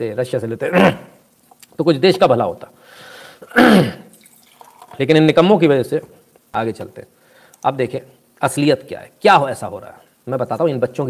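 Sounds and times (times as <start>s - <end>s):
man breathing: 2.8s - 3.5s, 7.2s - 7.6s.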